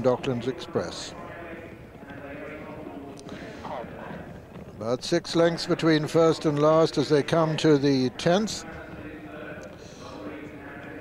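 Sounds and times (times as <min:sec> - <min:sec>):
horses galloping on turf: 0:00.0 - 0:11.0.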